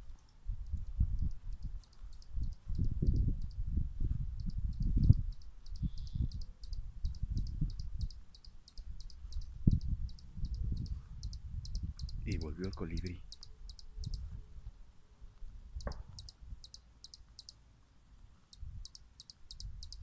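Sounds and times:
wind buffeting microphone: 0.0s - 14.8s, 18.6s - 18.9s
rapid high chirping: 1.2s - 3.6s, 4.4s - 14.3s, 15.8s - 17.6s, 18.5s - 20.0s.

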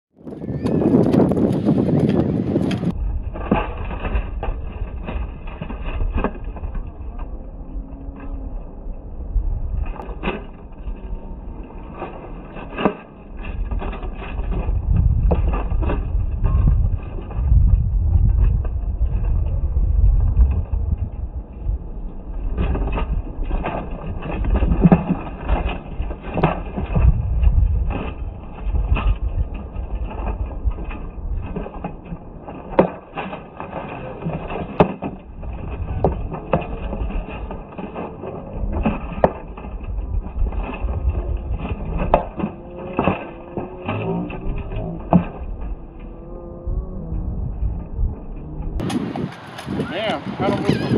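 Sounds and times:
wind rumble on microphone: 0.1s - 50.9s.

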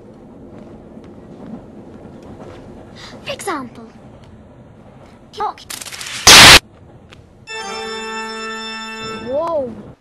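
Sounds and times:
harsh distorted noise burst: 5.8s - 6.6s.

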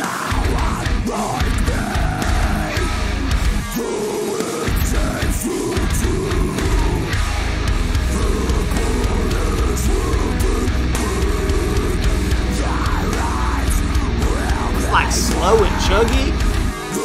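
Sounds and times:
loud metalcore music: 0.0s - 17.0s.

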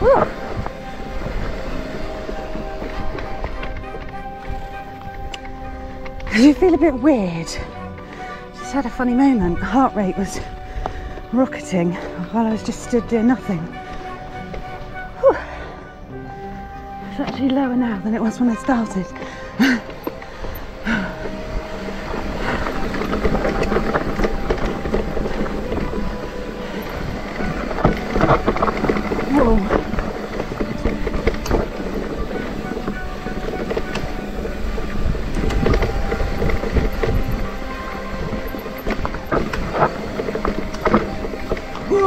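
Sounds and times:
wind on microphone: 0.0s - 7.0s, 20.3s - 42.0s
tyres rumbling on dirt: 0.0s - 42.0s.

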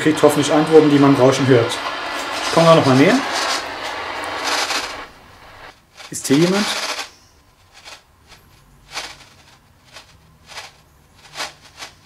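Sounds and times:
radio static hiss: 0.0s - 7.1s.

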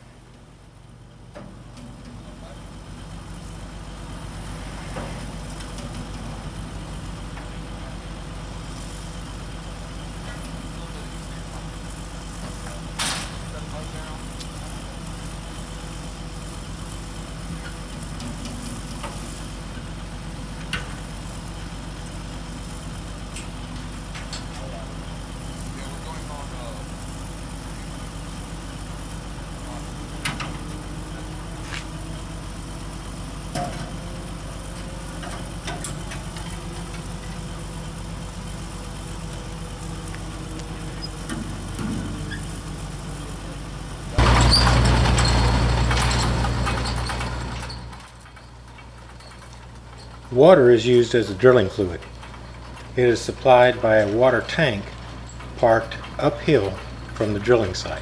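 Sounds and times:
truck engine idling: 0.0s - 58.0s.

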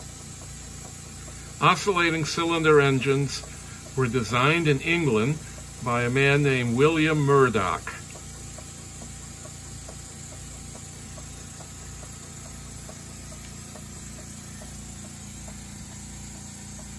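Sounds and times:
model engine ticking: 0.0s - 16.9s.

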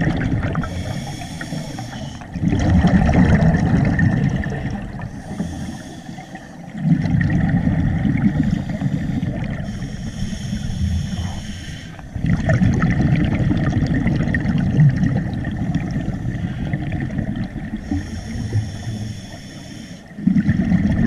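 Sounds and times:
diver exhaling bubbles underwater: 0.0s - 5.4s, 6.8s - 9.7s, 12.2s - 18.7s, 20.2s - 21.0s
hissing inhales through regulator: 0.5s - 2.4s, 5.0s - 6.7s, 8.2s - 12.2s, 17.8s - 20.2s.

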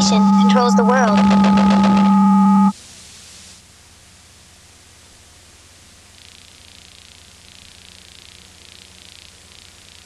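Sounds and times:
steady electronic tones: 0.0s - 2.7s
low hiss: 2.8s - 10.0s.

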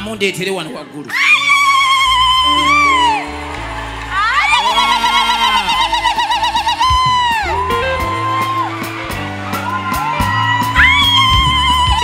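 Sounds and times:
church band music: 0.3s - 12.0s
high lead melody with vibrato: 1.4s - 12.0s.

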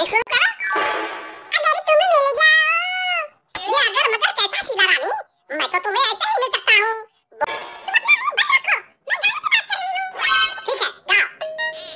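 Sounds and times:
high-pitched cartoon voice chattering: 7.9s - 11.9s.

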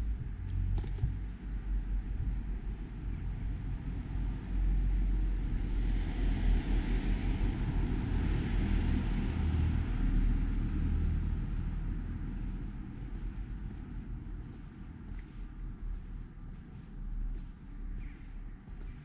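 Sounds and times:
steady low rumble: 0.0s - 19.0s.

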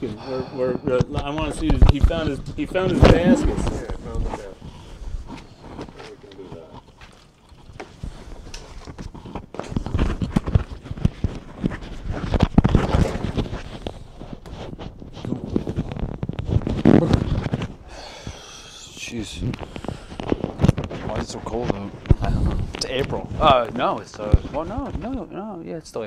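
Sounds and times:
muffled voices: 0.0s - 6.8s, 18.8s - 25.3s
clip-on microphone handling: 7.7s - 17.8s.

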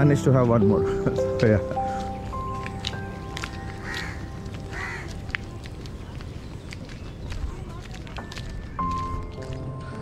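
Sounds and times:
quiet background music: 0.0s - 10.0s
crow cawing: 3.8s - 5.3s.

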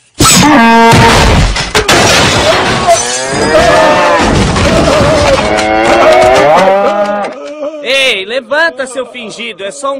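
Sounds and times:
furniture breaking: 0.8s - 6.6s
glass shattering: 1.1s - 5.4s
man screaming: 3.4s - 8.0s.

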